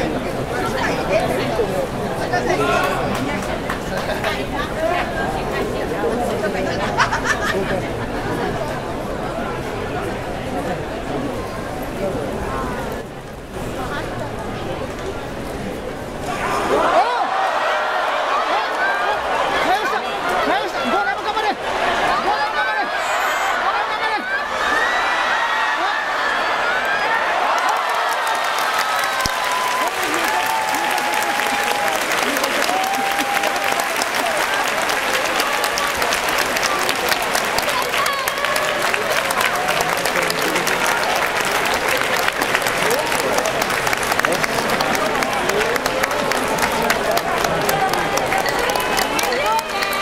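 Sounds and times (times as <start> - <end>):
crowd applauding and cheering: 22.1 - 50.0.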